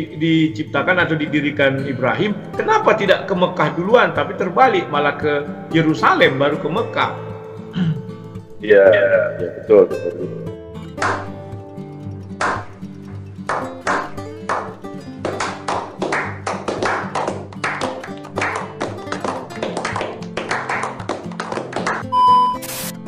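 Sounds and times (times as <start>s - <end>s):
background music: 0.0s - 23.0s
slow clap: 11.0s - 11.5s, 12.3s - 22.1s
steady test-tone beep: 22.0s - 23.0s
static hiss: 22.6s - 23.0s.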